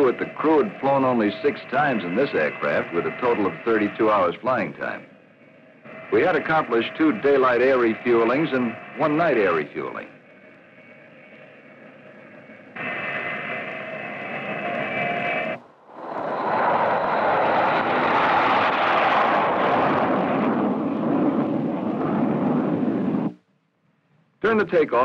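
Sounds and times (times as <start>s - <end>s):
loud jet roar: 0.0s - 10.2s, 12.7s - 23.4s
jet engine whine: 0.0s - 23.5s.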